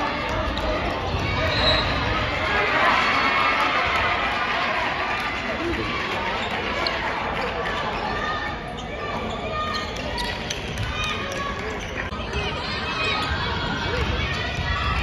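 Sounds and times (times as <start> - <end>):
many voices talking and calling: 0.0 - 15.0.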